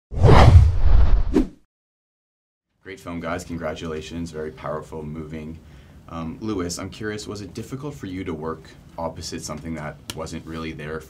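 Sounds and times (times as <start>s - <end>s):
loud whoosh: 0.1s - 1.6s.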